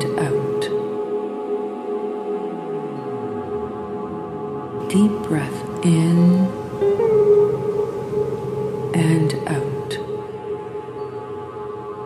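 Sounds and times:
long held wavering tone: 0.0 - 12.0.

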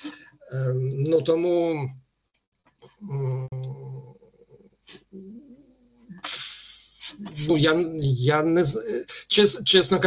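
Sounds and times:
low drawn-out vocal sound: 3.0 - 4.6, 5.2 - 8.3.

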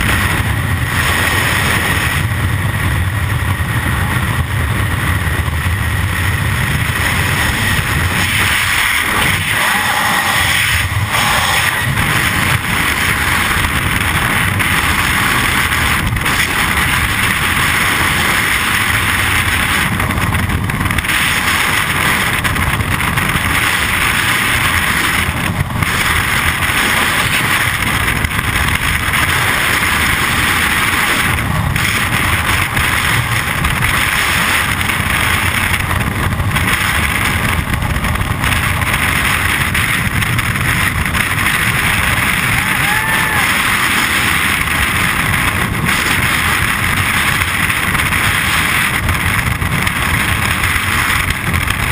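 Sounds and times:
wind rushing over microphone: 0.0 - 51.9.

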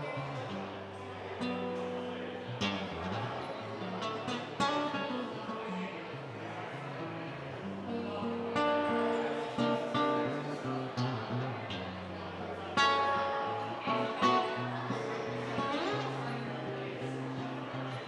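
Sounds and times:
acoustic guitar playing: 0.0 - 18.0.

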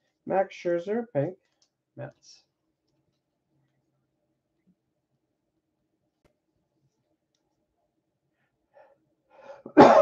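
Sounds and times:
man drawing a breath: 8.7 - 9.7
man clearing his throat: 9.7 - 10.0.

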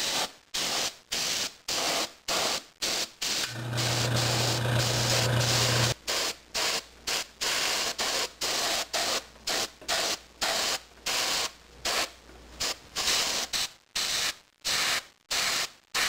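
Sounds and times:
airbrush spraying hiss: 0.0 - 16.0.

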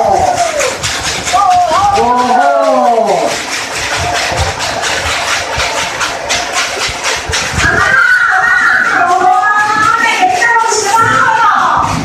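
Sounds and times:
crowd noise with clicks and knocks: 0.0 - 12.0.

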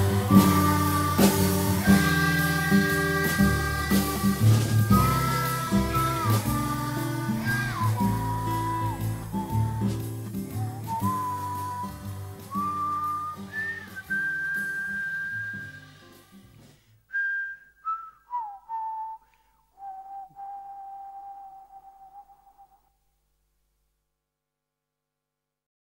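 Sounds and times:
whistled melody: 0.0 - 16.5, 17.1 - 22.9
acoustic guitar and band: 0.0 - 17.3.

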